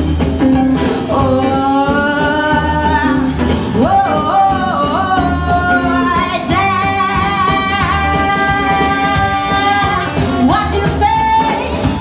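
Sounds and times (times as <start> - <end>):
blues band playing: 0.0 - 12.0
wavering lead melody with slides: 0.0 - 12.0.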